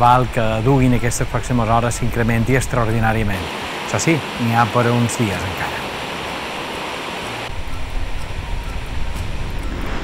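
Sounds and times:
water rushing over rocks: 0.0 - 7.5.

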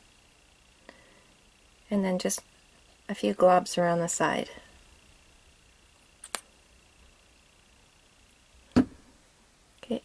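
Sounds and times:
bottle knocking on tabletop: 8.8 - 9.0.

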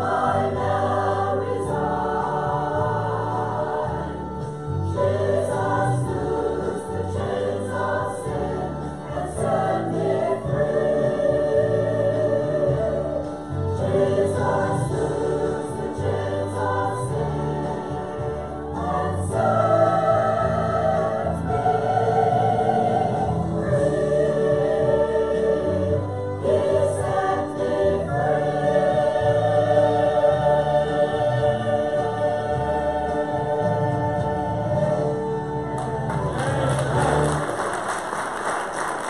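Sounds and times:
church choir singing a hymn: 0.0 - 37.4.

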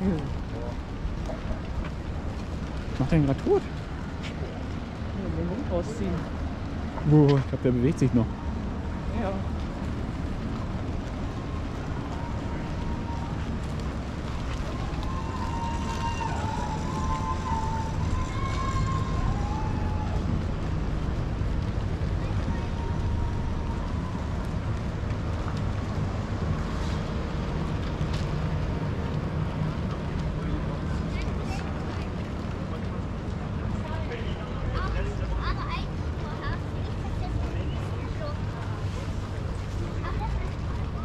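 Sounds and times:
passers-by voices: 0.0 - 41.0.

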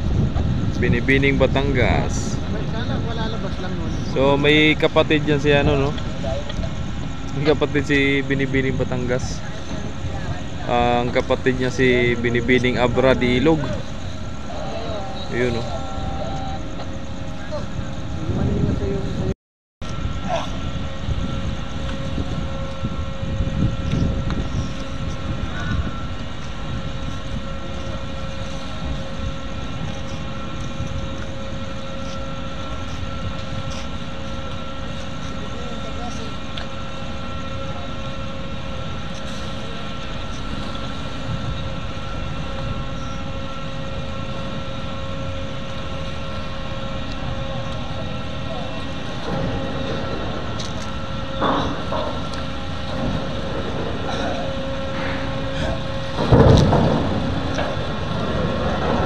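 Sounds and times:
generator hum: 0.0 - 59.0
ship engines low rumble: 0.0 - 59.0.

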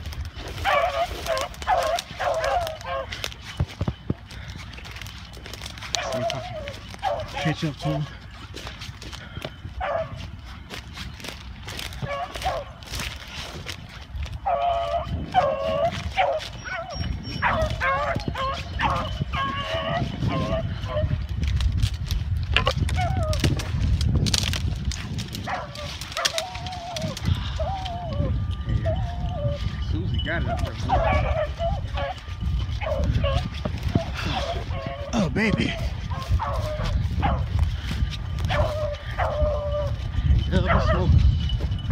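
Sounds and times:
beagles baying: 0.0 - 41.9
branches crackling: 0.0 - 41.9
brush rustling: 0.0 - 41.9.

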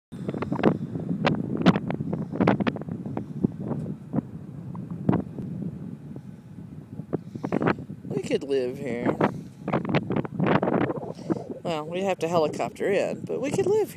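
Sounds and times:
wind buffeting microphone: 0.1 - 13.9.

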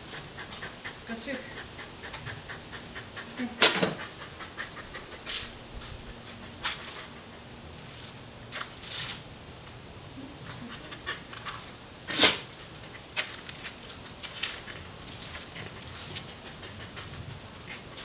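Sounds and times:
dog panting: 0.0 - 8.1, 10.2 - 18.0.

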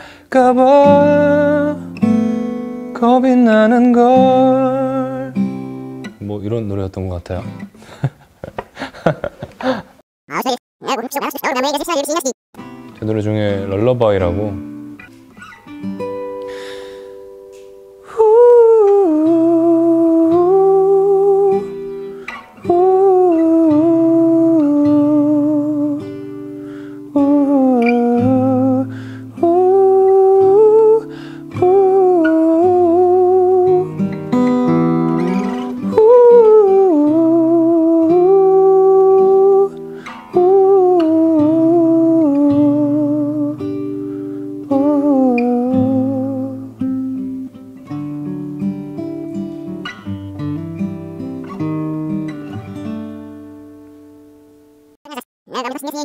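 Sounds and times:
man breathing: 0.0 - 0.3, 7.7 - 10.0, 16.4 - 17.2, 26.6 - 27.1, 28.9 - 29.3, 31.1 - 31.5, 39.8 - 40.2, 44.0 - 44.6
acoustic guitar: 0.0 - 56.0
man humming a melody: 18.1 - 21.7, 22.6 - 26.0, 27.1 - 33.9, 35.9 - 39.8, 40.4 - 43.6, 44.7 - 46.7.

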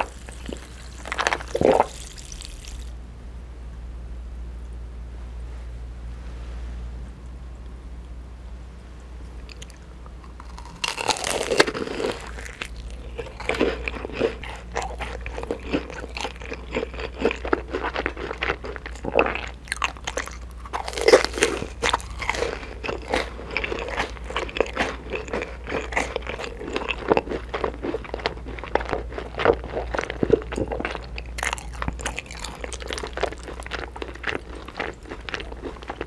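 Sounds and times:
crunching and chewing food: 0.0 - 3.0, 9.4 - 36.0.

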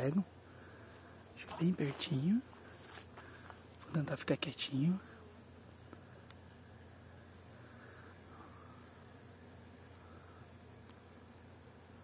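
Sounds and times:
honeybees humming: 0.0 - 12.0
insect chirping: 0.0 - 12.0.

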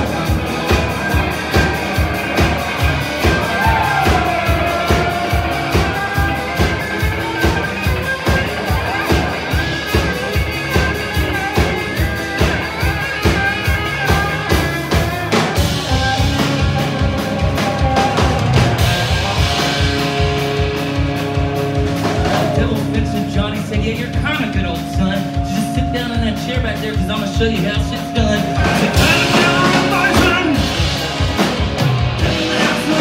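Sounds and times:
electric bass: 0.0 - 33.0
electric guitar soloing: 0.0 - 33.0
fast drum beat: 0.0 - 33.0.

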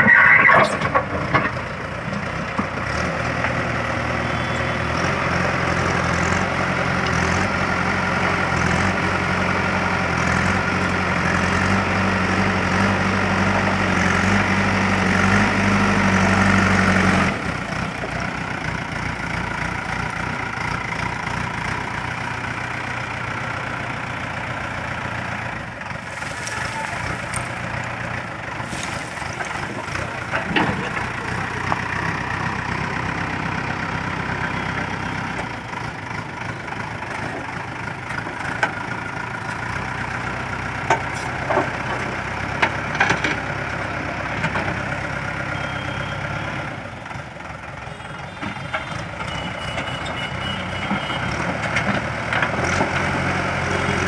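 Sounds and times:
diesel engine working: 0.0 - 54.0
bucket digging into rubble: 28.6 - 29.8.

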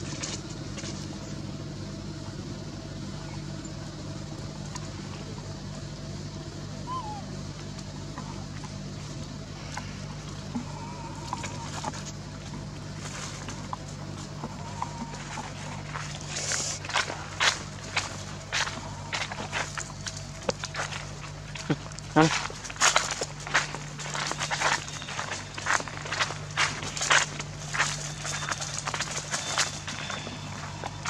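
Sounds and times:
steady low hum: 0.0 - 31.0
footsteps crunching dry leaves: 8.9 - 31.0.

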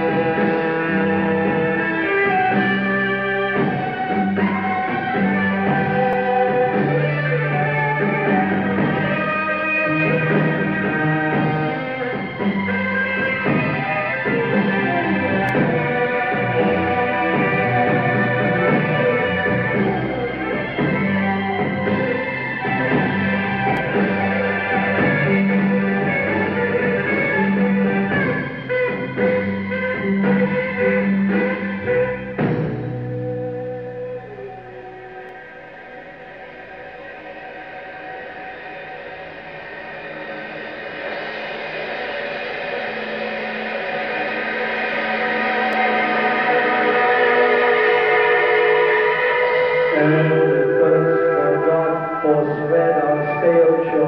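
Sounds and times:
rock band playing live: 0.0 - 35.5, 38.5 - 54.0.

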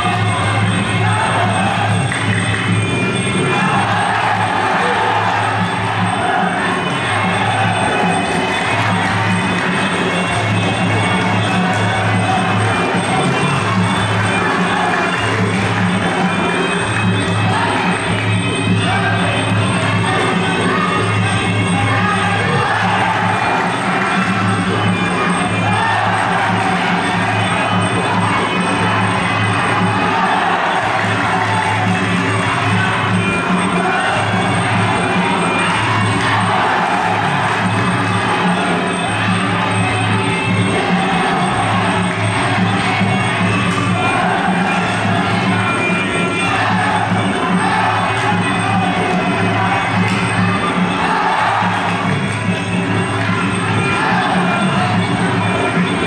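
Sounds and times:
crowd shouting and cheering: 0.0 - 56.0
traditional boxing music: 0.0 - 56.0.

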